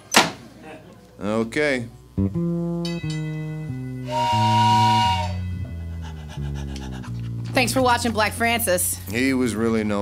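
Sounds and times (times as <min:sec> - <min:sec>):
bass guitar line: 0:02.1 - 0:09.4
breathy harmonica chord: 0:02.2 - 0:07.4.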